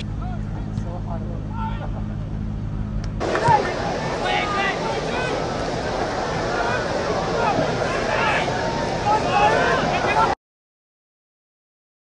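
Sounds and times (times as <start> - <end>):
steady low hum: 0.0 - 10.4
faint distant voices: 3.2 - 10.4
stadium crowd noise: 3.2 - 10.4.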